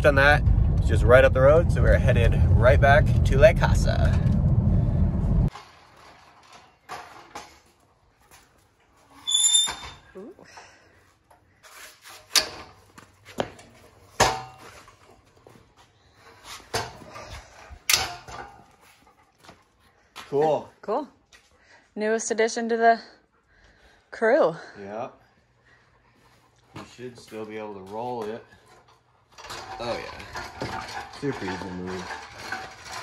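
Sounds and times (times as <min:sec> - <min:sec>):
car cabin road noise: 0:00.0 - 0:05.5
high squeak: 0:09.2 - 0:10.1.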